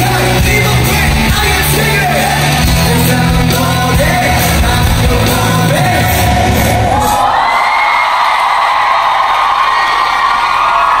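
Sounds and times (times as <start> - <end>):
rock band playing live: 0.0 - 7.2
sung vocals: 0.0 - 7.5
crowd screaming and cheering: 0.0 - 11.0.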